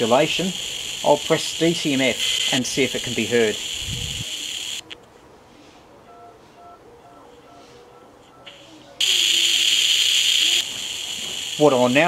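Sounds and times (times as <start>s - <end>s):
radio receiver hiss through speaker: 0.0s - 5.0s, 8.2s - 12.0s.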